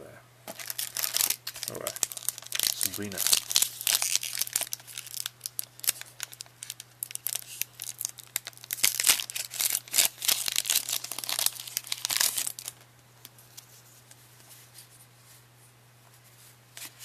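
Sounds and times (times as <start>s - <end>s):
wrapper tearing and crinkling: 0.5s - 12.8s.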